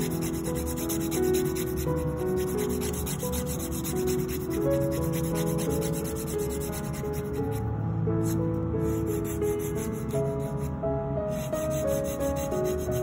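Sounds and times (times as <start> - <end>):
nail file rasping: 0.0 - 7.6
soft background music: 0.0 - 13.0.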